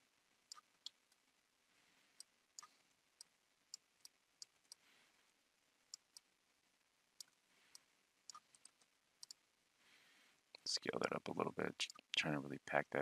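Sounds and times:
computer mouse clicks: 0.5 - 1.0, 7.2 - 9.4.

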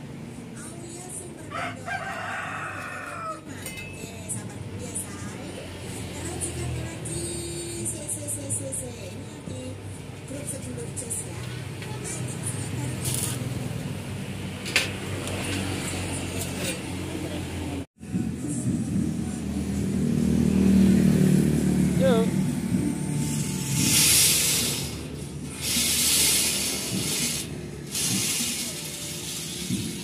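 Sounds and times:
electric circular saw bursts: 23.2 - 30.0.

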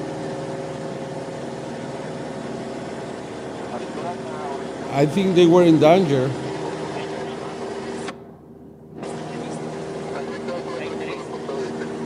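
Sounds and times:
propeller aircraft engine droning: 0.0 - 12.0.

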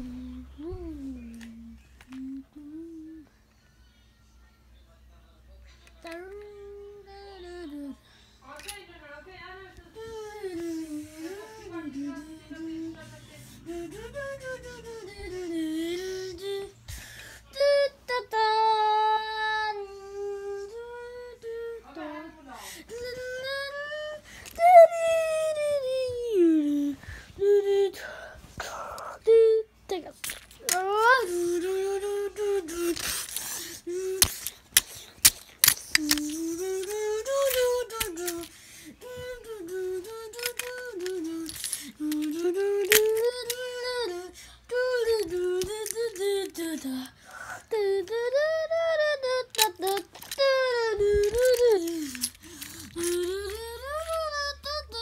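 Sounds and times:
child humming: 0.0 - 3.2, 10.0 - 16.8, 17.6 - 22.0, 22.8 - 29.7, 30.6 - 55.0.

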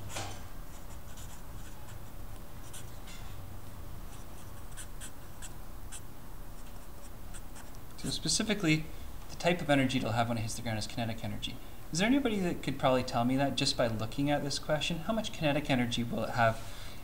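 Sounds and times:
low room hum: 0.0 - 17.0
marker scratching on paper: 0.7 - 3.0, 4.1 - 6.0, 6.6 - 7.8.

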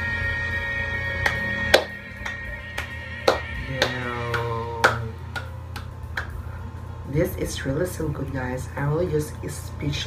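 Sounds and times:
person clapping hands: 1.2 - 6.4.

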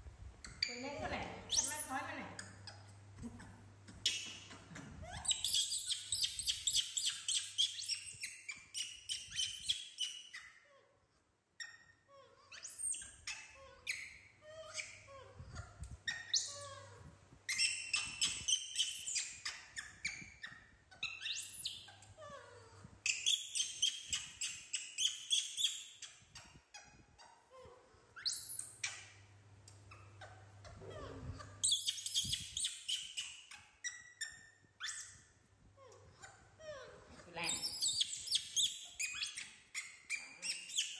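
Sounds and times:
small animals squeaking: 0.4 - 2.9, 3.9 - 10.9, 11.6 - 40.9.

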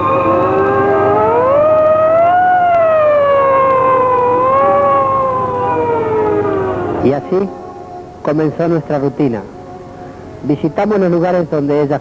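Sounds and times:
siren wailing: 0.0 - 10.6.

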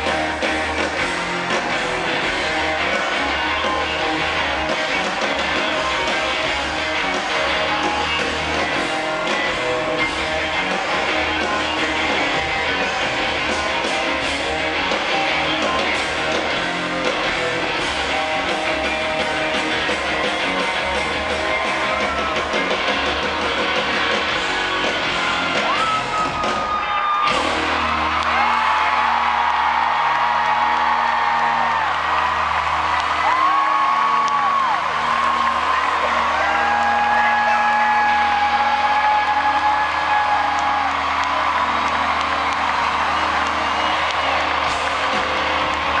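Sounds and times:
crowd whooping: 0.0 - 46.0
live rock band playing: 0.0 - 46.0.

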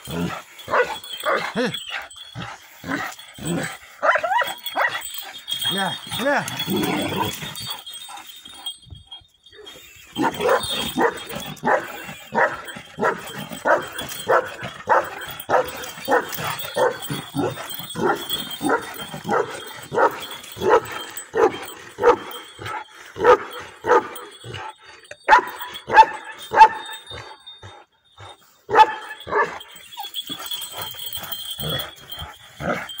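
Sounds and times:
dog barking: 0.7 - 1.5, 4.0 - 5.1, 10.2 - 22.3, 23.2 - 24.2, 25.3 - 27.0, 28.7 - 29.6.

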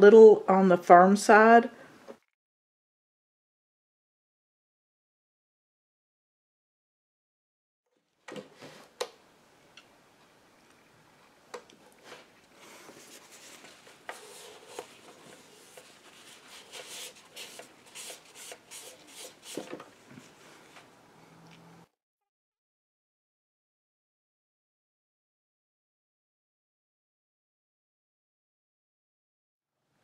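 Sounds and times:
tissue rubbing over wood: 12.0 - 20.7.

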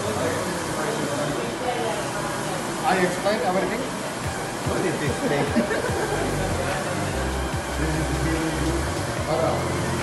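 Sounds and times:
printer running: 0.0 - 10.0
background music: 4.2 - 10.0.

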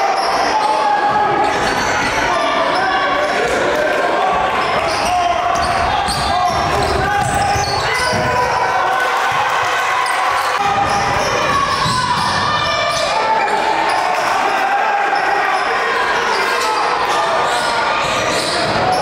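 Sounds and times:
indistinct echoing voices: 0.0 - 19.0.

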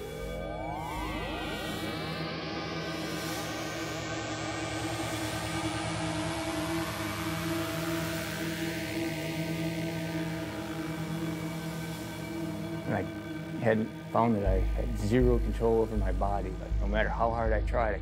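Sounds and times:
high rising whoosh: 0.0 - 6.8
eerie electronic drone: 0.0 - 18.0.

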